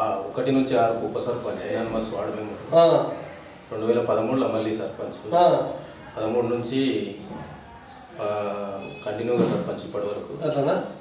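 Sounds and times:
man speaking: 0.0 - 7.3, 8.1 - 11.0.

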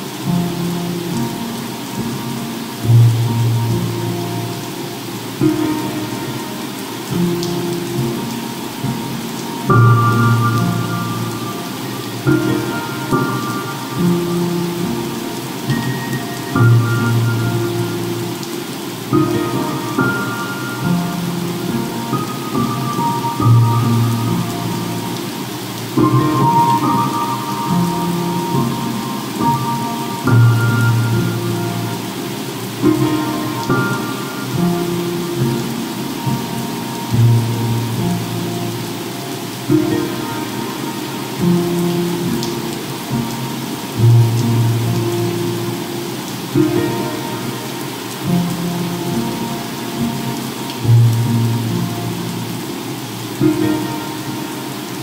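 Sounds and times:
ocean waves rushing: 0.0 - 55.0
slow piano music: 0.0 - 55.0.

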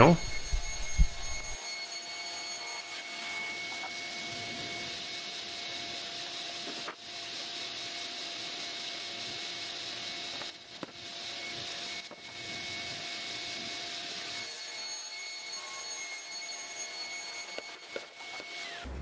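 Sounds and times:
faint steady tones: 0.0 - 5.0.

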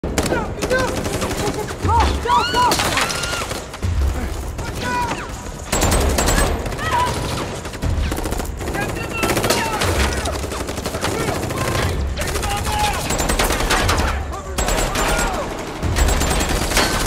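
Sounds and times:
rapid rifle gunfire: 0.0 - 1.8, 5.4 - 17.0.

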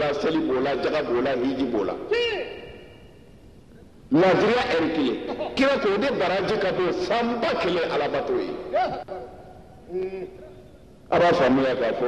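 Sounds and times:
man calling over public address: 0.0 - 2.8, 4.1 - 9.3, 11.1 - 12.0.

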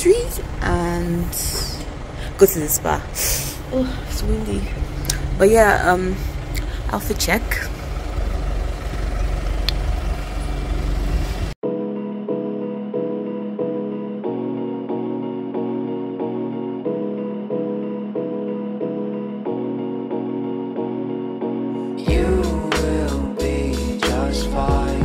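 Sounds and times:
pulsing keyboard chords: 0.0 - 25.0.

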